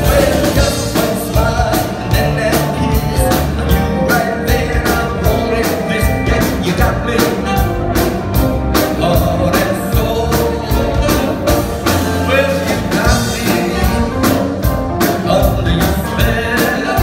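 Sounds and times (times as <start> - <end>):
man singing: 0.0 - 17.0
rhythm and blues band playing: 0.0 - 17.0
saxophone: 6.9 - 15.0.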